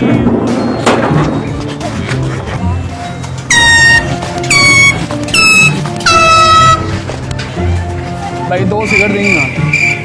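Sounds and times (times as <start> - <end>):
background music: 0.0 - 10.0
air horn blasts: 3.5 - 7.0.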